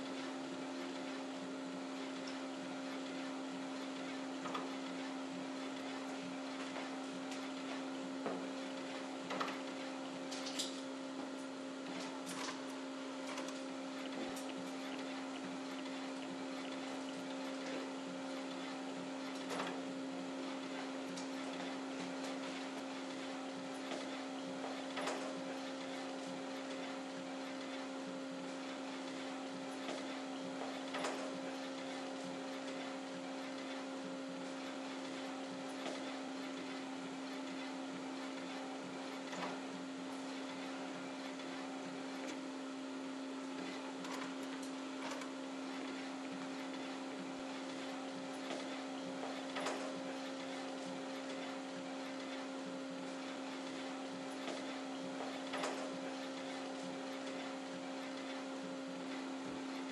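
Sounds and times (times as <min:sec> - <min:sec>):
label printer mechanical hum: 0:00.0 - 0:59.9.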